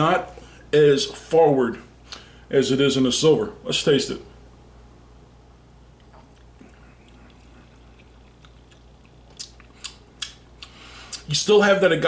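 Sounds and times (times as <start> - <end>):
wet lip and tongue smacks: 6.0 - 11.3.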